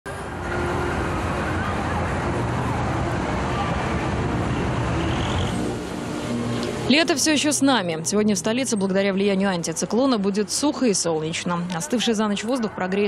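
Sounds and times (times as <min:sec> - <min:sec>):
road traffic hum: 0:00.1 - 0:13.0.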